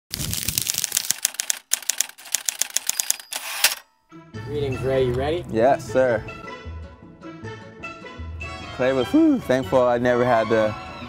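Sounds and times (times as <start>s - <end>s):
paper crinkling and crackling: 0.1s - 2.9s.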